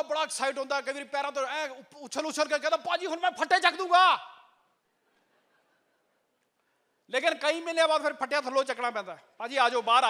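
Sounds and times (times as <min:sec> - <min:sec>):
man speaking into a microphone: 0:00.0 - 0:04.5, 0:07.1 - 0:10.0.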